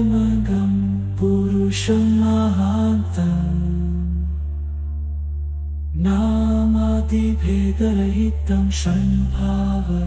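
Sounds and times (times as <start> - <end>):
person chanting: 0.0 - 4.6, 5.9 - 10.0
low drone: 0.0 - 10.0.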